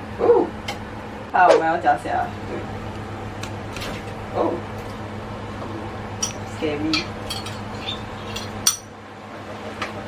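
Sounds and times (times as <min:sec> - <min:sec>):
steady low hum: 0:00.0 - 0:10.0
glass bowl clinking on metal pot: 0:06.2 - 0:08.9.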